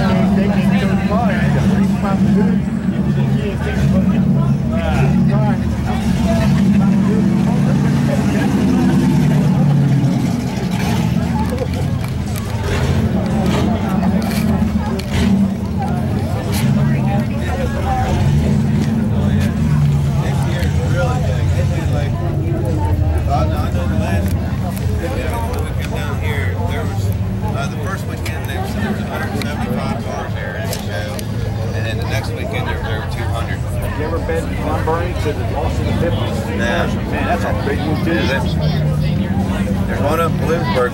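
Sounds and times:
crowd chatter: 0.0 - 40.9
engine idling with low rumble: 0.0 - 40.9.

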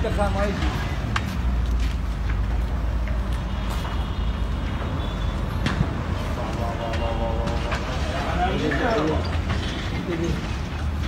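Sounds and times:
fire rumbling: 5.5 - 11.0.

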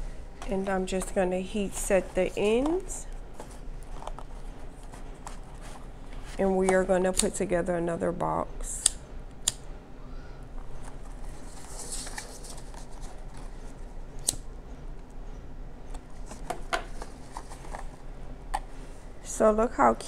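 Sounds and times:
ribbon and paper rustling: 0.4 - 6.6, 10.8 - 13.8.

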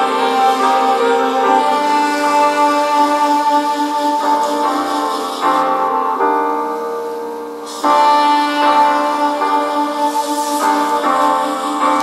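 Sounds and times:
soft piano chords: 0.0 - 12.0.

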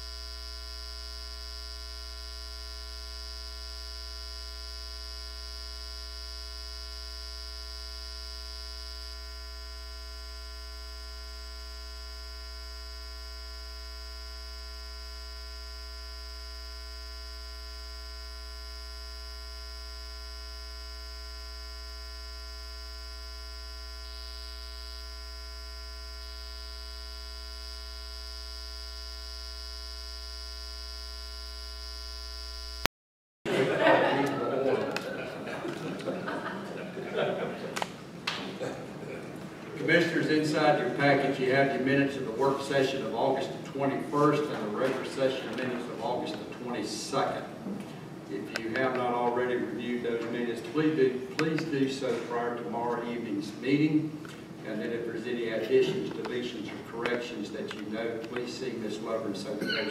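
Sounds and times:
electrical mains hum: 0.0 - 32.9, 33.5 - 59.9
high-pitched whine: 59.4 - 59.9.

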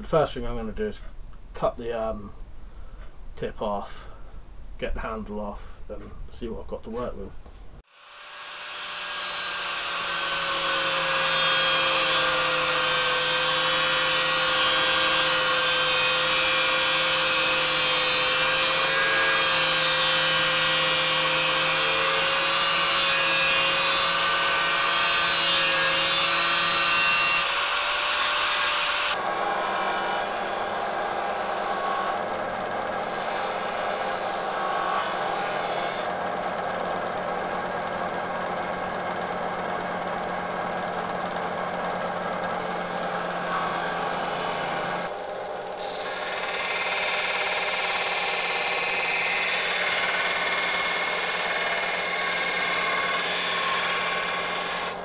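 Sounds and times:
angle grinder cutting steel: 7.9 - 39.7, 42.2 - 45.1, 45.7 - 55.0.

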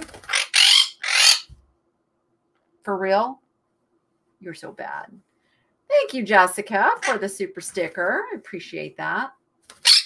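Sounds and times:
parrot screeching: 0.2 - 1.6, 9.8 - 10.0.

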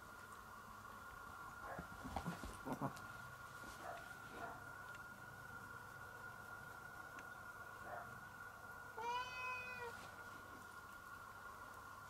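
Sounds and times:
cat meowing: 9.0 - 10.0.

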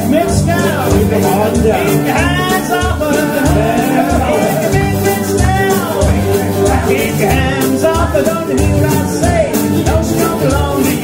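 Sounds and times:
acoustic guitar strumming: 0.0 - 11.0
bass on thumping beat: 0.0 - 11.0
mandolin strumming: 0.0 - 11.0
voices singing: 0.0 - 11.0
blown jug: 1.0 - 9.0.

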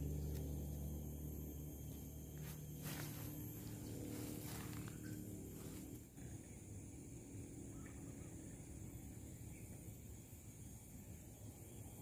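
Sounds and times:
faint low rumble: 0.0 - 8.6
thin high-pitched hum: 0.0 - 12.0.

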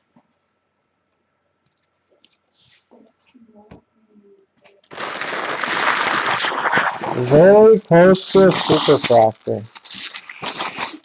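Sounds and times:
foil pack crinkling: 4.8 - 11.0.

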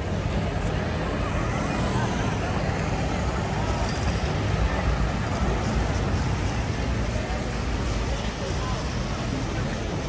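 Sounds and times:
cars passing on wet road: 0.0 - 10.0
crowd chatter: 0.0 - 10.0
motorcycle passing: 0.2 - 7.4.

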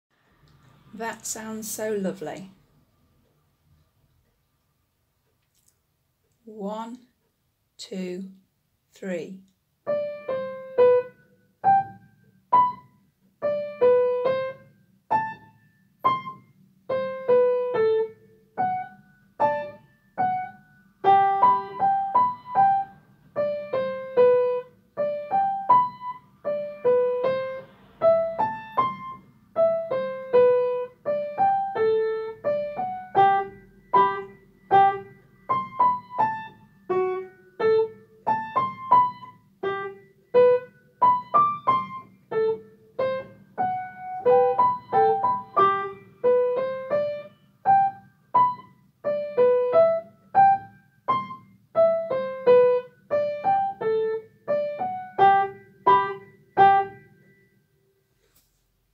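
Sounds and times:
upright piano slow melody: 9.8 - 58.1.

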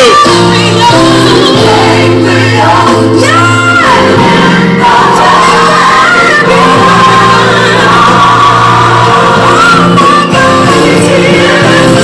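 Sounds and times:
gospel music: 0.0 - 12.0.

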